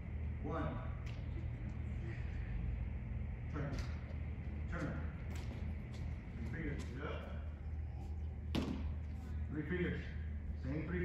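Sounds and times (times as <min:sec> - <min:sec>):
low hum: 0:00.0 - 0:11.0
baseball smacking into mitt: 0:08.5 - 0:09.0.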